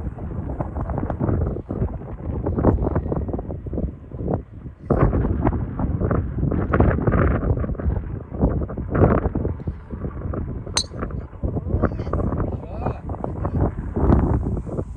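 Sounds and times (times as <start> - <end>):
wind buffeting microphone: 0.0 - 14.9.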